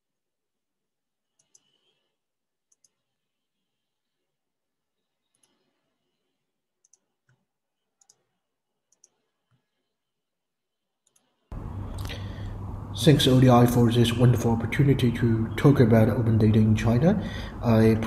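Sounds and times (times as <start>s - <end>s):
computer mouse clicks: 1.3s - 2.0s, 2.7s - 3.1s, 5.2s - 6.2s, 6.8s - 9.8s, 11.0s - 11.3s
loud steady hum and hiss: 11.5s - 18.0s.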